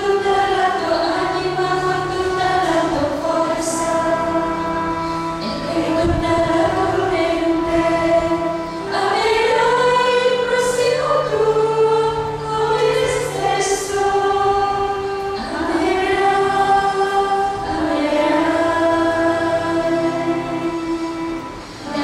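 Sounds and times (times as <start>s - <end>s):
women's choir singing slowly: 0.0s - 22.0s.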